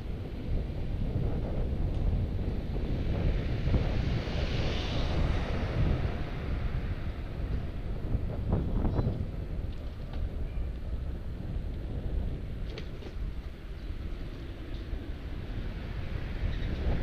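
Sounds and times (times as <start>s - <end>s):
road noise: 0.0s - 17.0s
wind buffeting microphone: 0.0s - 17.0s.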